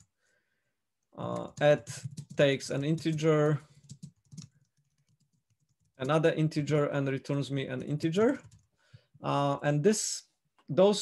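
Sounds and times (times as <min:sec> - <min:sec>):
computer keyboard typing: 0:01.2 - 0:06.4, 0:07.7 - 0:08.7.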